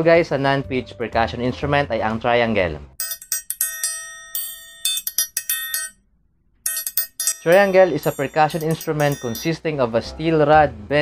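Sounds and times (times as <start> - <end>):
triangle strikes ringing: 3.0 - 6.0, 6.7 - 9.6.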